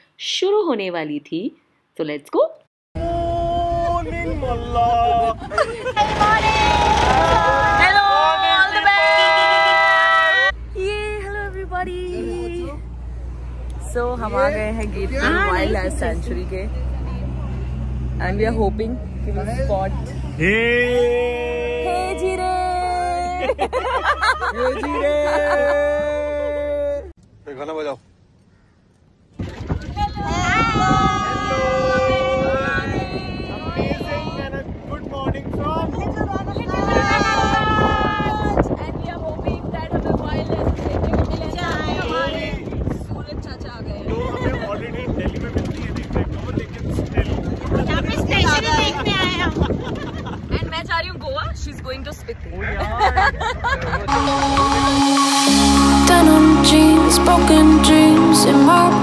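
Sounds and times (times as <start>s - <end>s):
vehicle engine and tyres rumbling: 3.0s - 54.3s
passengers talking: 3.6s - 26.4s, 29.9s - 59.0s
people calling out: 6.0s - 10.5s
wind buffeting microphone: 29.4s - 52.6s.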